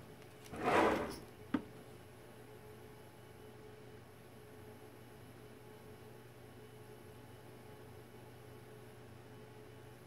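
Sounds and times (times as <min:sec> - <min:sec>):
short scraping rustle: 0:00.5 - 0:01.2.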